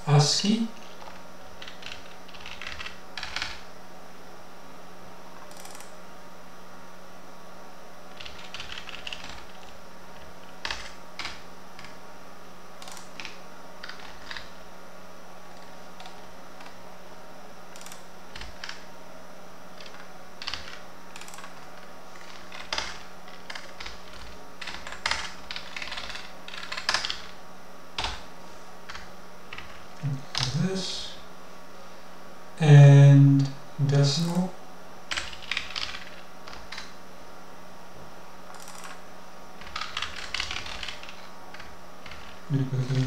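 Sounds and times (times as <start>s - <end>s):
steady low hum: 0.0s - 43.0s
computer keyboard keystrokes: 0.9s - 3.6s, 8.1s - 12.0s, 12.8s - 14.5s, 17.7s - 18.8s, 19.8s - 27.3s, 35.1s - 36.9s, 38.5s - 39.0s, 39.6s - 43.0s.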